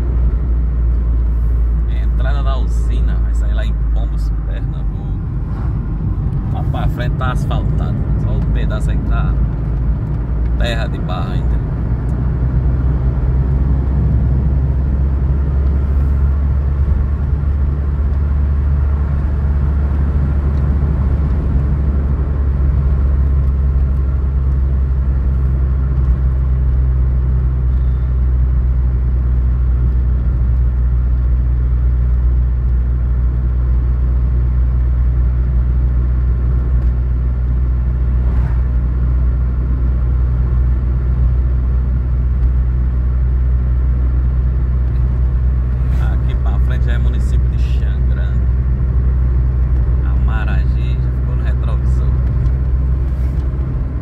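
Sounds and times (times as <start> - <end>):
car engine rumble: 0.0 - 54.0
tyres on asphalt: 0.0 - 54.0.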